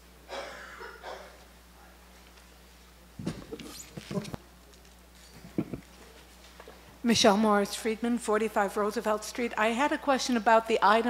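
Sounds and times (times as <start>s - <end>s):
microphone handling bumps and scrapes: 3.2s - 4.4s.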